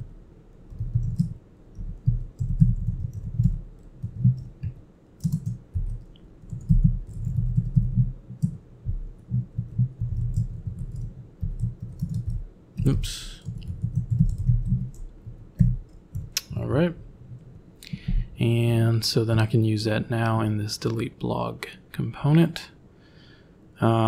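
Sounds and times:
typing on computer keyboard: 0.7s - 8.6s, 9.2s - 12.4s, 13.4s - 16.4s.

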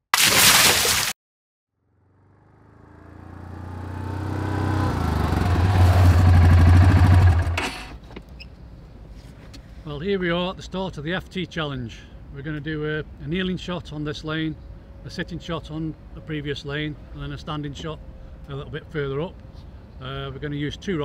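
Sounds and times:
quad bike engine throbbing: 2.1s - 8.0s.

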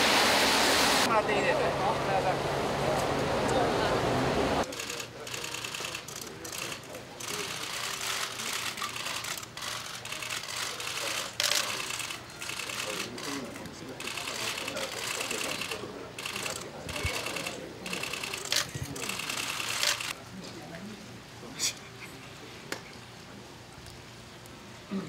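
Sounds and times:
camera shutters clicking: 4.7s - 13.4s, 14.0s - 20.1s.

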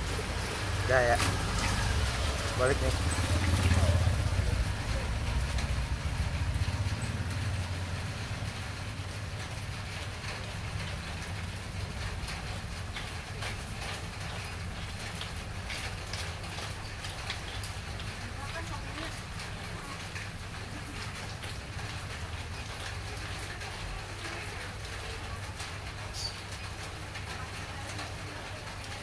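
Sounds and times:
passing vehicle engine rumble: 0.0s - 23.8s.

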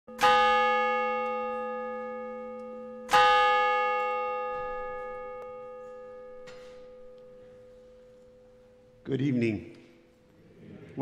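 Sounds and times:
bell ringing: 0.1s - 10.0s.

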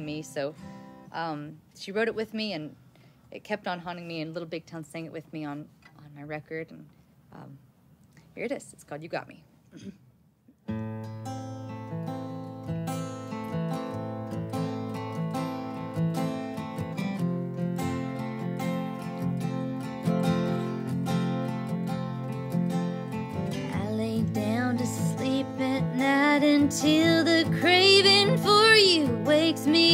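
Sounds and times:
acoustic guitars picking: 0.0s - 1.2s, 10.6s - 29.9s
woman singing: 23.7s - 29.9s.

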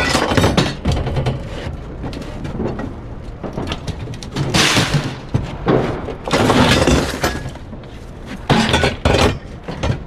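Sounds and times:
scrap metal crashing: 3.4s - 7.8s, 8.4s - 10.0s.

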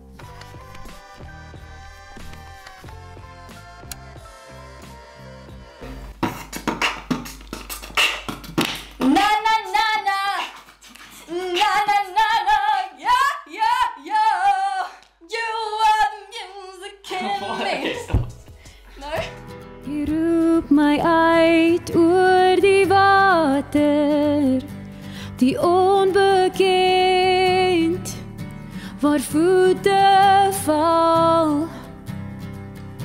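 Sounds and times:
beatbox beat: 5.8s - 9.4s
soft background music: 17.3s - 33.0s.

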